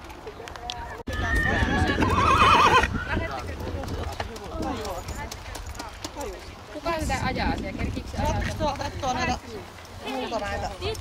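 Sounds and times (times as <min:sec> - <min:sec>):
people talking: 0:00.0 - 0:11.0
horse whinnying: 0:01.1 - 0:03.2.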